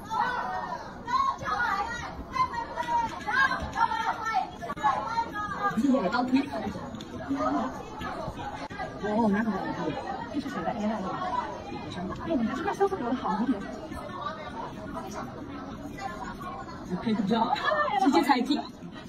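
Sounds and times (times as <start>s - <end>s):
distant chatter of people: 0.0s - 19.0s.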